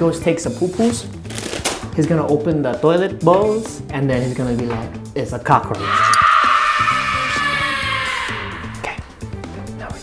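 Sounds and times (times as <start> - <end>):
long high-pitched scream: 5.8 - 8.9.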